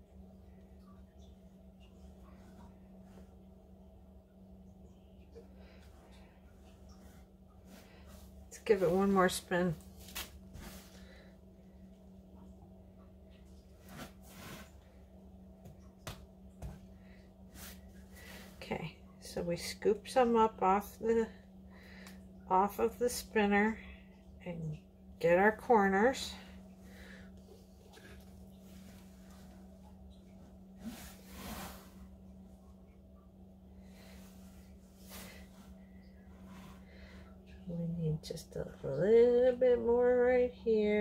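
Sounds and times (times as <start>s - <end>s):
steady low hum: 0.0s - 41.0s
soft rustle: 5.7s - 11.3s, 13.5s - 15.0s, 27.0s - 32.5s, 33.9s - 37.2s.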